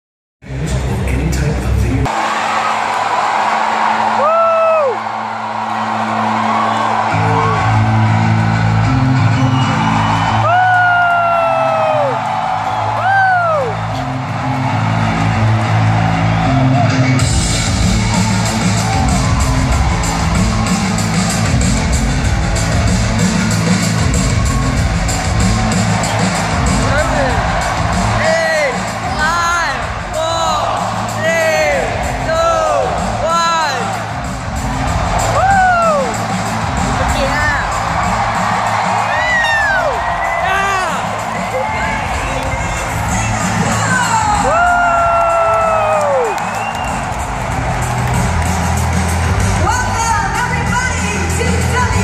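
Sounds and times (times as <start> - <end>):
arena music over loudspeakers: 0.4 - 52.0
loud crowd: 0.4 - 52.0
fans whooping: 2.1 - 52.0.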